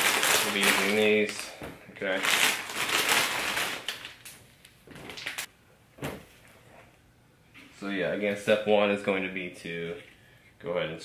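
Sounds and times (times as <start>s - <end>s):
plastic wrapping crinkling: 0.0s - 5.5s.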